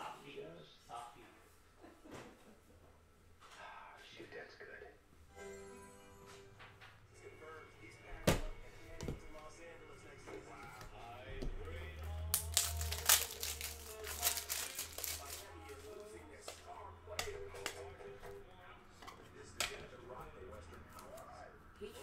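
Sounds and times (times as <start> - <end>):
sharp plastic crackles: 12.1 - 16.6
plastic crinkling and rustling: 12.2 - 16.1.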